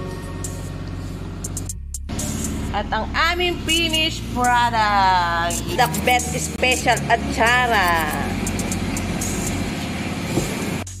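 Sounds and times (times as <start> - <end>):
low hum: 0.0 - 10.9
steady background noise: 4.1 - 10.8.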